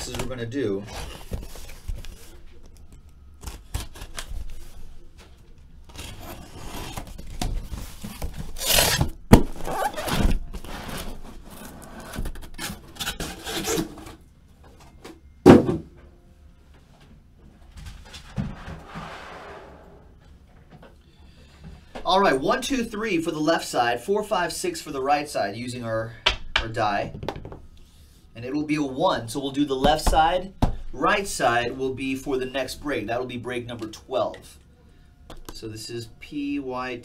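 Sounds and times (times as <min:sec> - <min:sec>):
cardboard and plastic wrap rubbing: 0:00.0 - 0:02.8, 0:05.9 - 0:14.0
boxes knocking down: 0:15.4 - 0:15.9.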